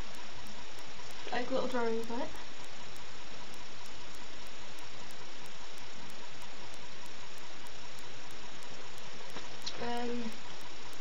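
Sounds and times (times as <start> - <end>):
recording noise hiss: 0.0 - 11.0.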